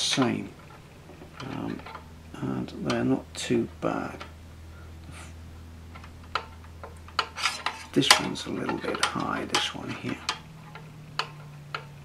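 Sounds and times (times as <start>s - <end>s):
steel rule clicking on metal rods: 0.0s - 3.1s, 6.0s - 12.0s.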